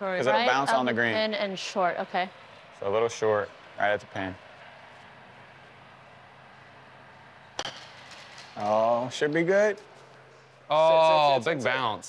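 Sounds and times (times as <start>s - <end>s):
golf club striking ball: 7.4s - 8.6s.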